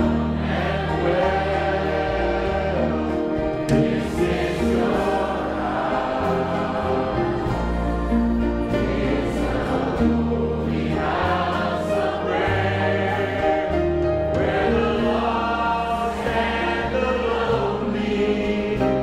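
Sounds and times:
group singing gospel chorus: 0.0 - 19.0
instrumental accompaniment: 0.0 - 19.0.

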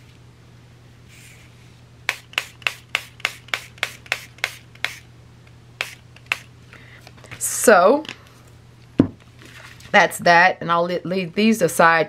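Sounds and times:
pump mister bottle spraying: 2.1 - 5.0, 5.8 - 6.5.

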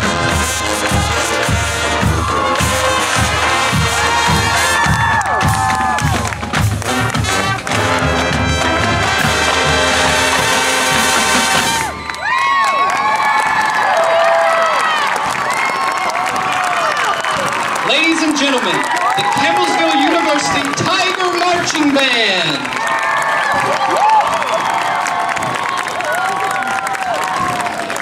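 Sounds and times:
brass sustaining chords: 0.0 - 5.0, 6.5 - 11.9
drumline hits: 0.0 - 12.4, 17.3 - 26.0
crowd cheering and whooping: 1.8 - 6.8, 11.4 - 28.0.

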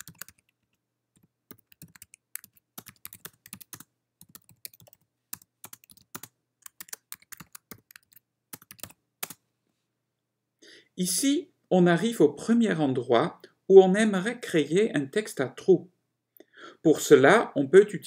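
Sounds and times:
computer keyboard typing: 0.0 - 9.4.

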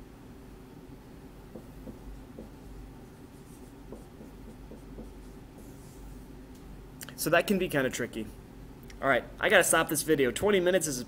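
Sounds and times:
marker writing on whiteboard: 1.5 - 6.3.

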